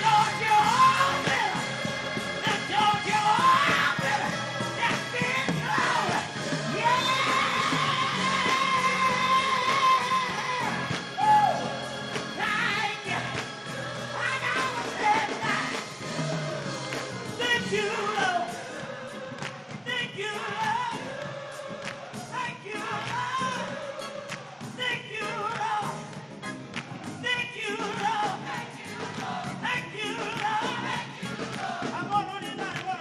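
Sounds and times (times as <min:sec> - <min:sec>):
band with drums and cymbals: 0:00.0 - 0:33.0.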